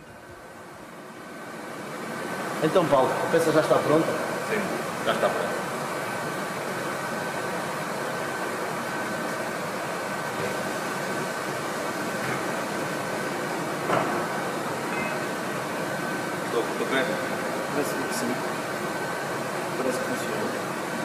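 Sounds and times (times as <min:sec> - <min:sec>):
machinery hum and hiss: 0:00.0 - 0:21.0
high-pitched whine: 0:08.4 - 0:19.2.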